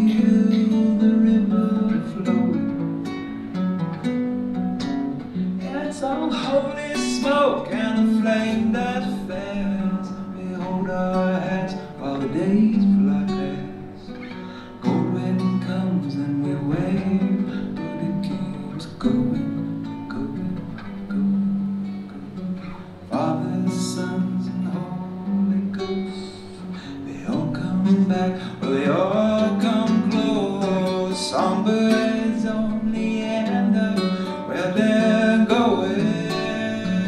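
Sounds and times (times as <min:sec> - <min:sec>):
acoustic guitar strumming chords: 0:00.0 - 0:37.0.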